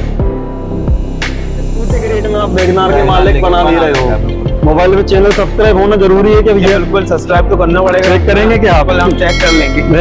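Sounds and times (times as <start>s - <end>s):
deep bass hum: 0.0s - 6.6s
background music with steady beat: 0.0s - 10.0s.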